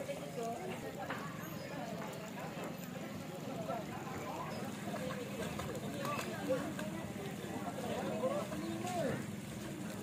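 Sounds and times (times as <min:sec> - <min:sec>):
people chattering and calling out: 0:00.0 - 0:10.0
steady background noise: 0:00.0 - 0:10.0.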